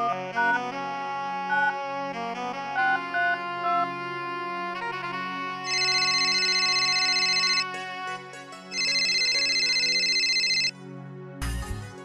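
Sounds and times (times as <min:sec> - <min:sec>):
background music: 0:00.0 - 0:12.0
pulsing electronic ringtone trill: 0:05.7 - 0:07.7, 0:08.7 - 0:10.7.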